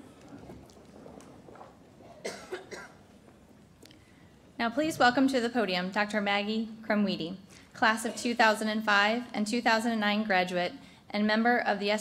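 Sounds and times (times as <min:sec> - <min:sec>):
woman coughing into a microphone: 0:02.1 - 0:03.1.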